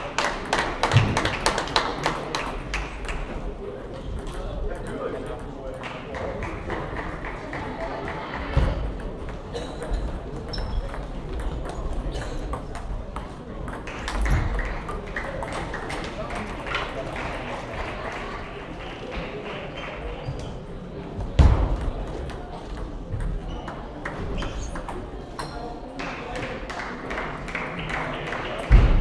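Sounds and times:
chatter in sports hall: 0.0 - 29.0.

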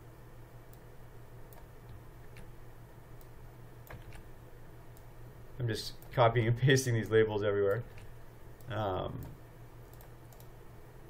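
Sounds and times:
low steady hum: 0.0 - 11.0
mouse and keyboard clicks: 3.9 - 4.2.

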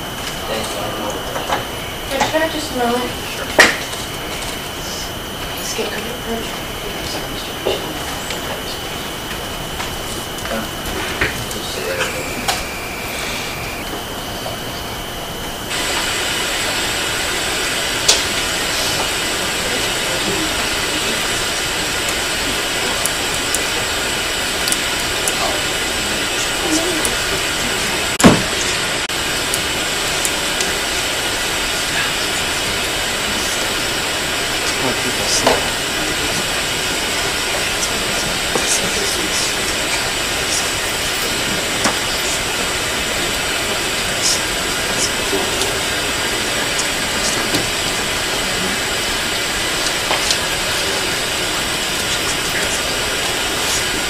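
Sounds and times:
microphone hiss: 0.0 - 54.0.

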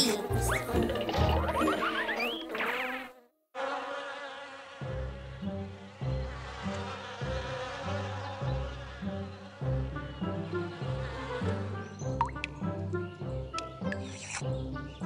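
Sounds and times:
cartoon bee swarm buzzing: 0.0 - 14.0.

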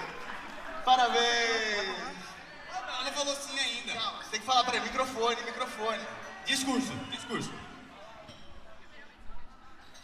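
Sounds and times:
murmur of voices in a hall: 0.0 - 10.0.

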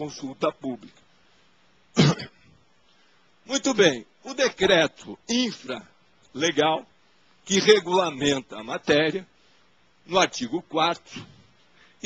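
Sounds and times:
person coughing: 2.0 - 2.5.

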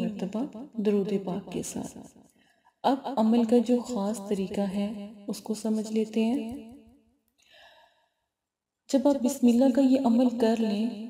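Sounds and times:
faint intake of breath: 7.4 - 8.2.

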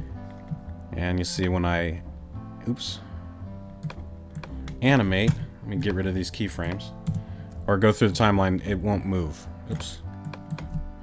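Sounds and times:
background music: 0.0 - 11.0
man's voice: 4.8 - 7.0, 7.7 - 10.0
computer clicks: 10.2 - 10.8.

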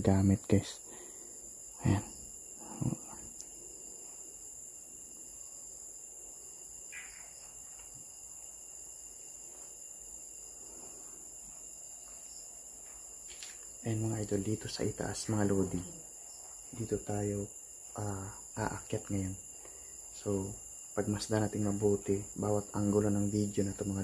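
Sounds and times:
crickets trilling: 0.0 - 24.0.

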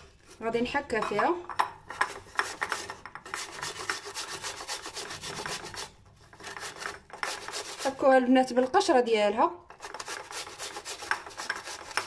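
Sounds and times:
potato rasping on a grater: 2.1 - 8.1, 9.7 - 12.0.

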